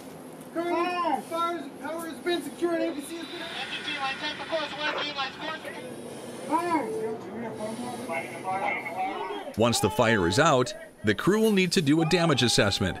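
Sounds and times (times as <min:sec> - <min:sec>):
steady background hiss: 0:00.0 - 0:12.9
voices calling out: 0:06.5 - 0:13.0.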